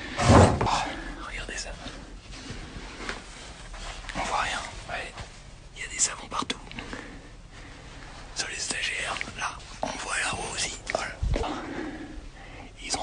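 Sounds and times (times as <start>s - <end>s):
man whispering: 0.6s - 2.1s, 4.1s - 7.0s, 8.3s - 11.7s, 12.4s - 13.0s.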